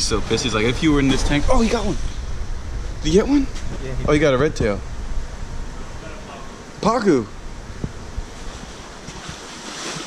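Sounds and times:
water splashing in fish tank: 0:08.5 - 0:10.0.

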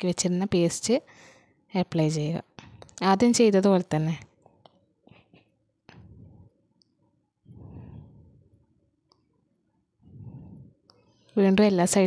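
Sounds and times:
muffled low sound: 0:07.5 - 0:08.7, 0:10.0 - 0:10.8.

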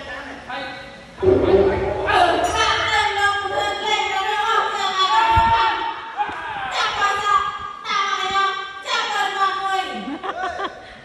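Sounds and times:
low thud: 0:01.2 - 0:03.9.

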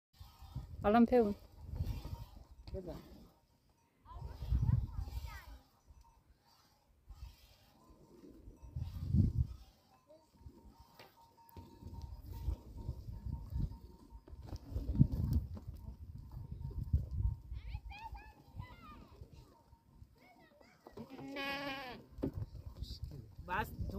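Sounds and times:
wind rumble on microphone: 0:00.2 - 0:02.7, 0:04.1 - 0:05.6, 0:08.5 - 0:09.6, 0:11.7 - 0:19.4, 0:22.2 - 0:23.9
goats bleating: 0:21.0 - 0:22.1.

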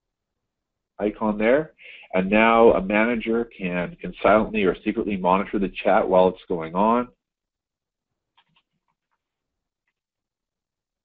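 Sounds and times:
faint keyboard clicks: 0:08.3 - 0:10.1.

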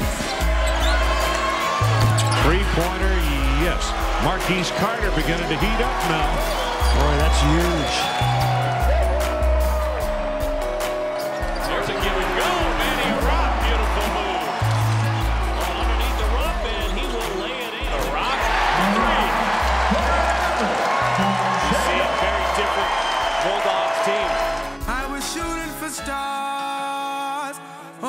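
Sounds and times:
arena crowd cheering: 0:00.0 - 0:25.2.

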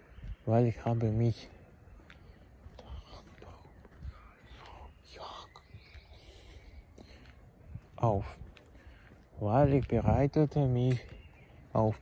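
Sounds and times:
man whispering: 0:02.3 - 0:07.3.

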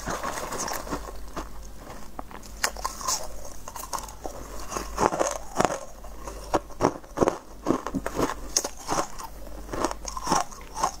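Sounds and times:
person chewing crunchy food: 0:00.0 - 0:11.0.

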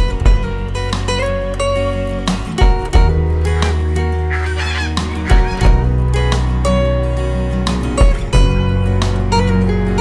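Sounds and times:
guitar music with bass: 0:00.0 - 0:10.0
rooster crowing: 0:04.3 - 0:05.7.

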